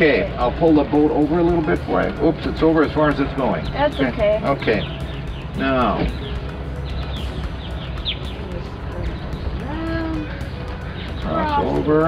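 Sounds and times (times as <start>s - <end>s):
steady low rumble: 0.0s - 12.0s
high bird chirps: 3.6s - 9.4s.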